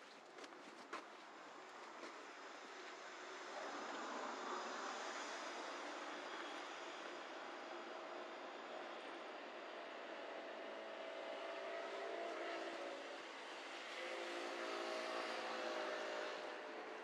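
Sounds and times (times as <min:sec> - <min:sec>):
motor engine droning: 0:03.4 - 0:17.0.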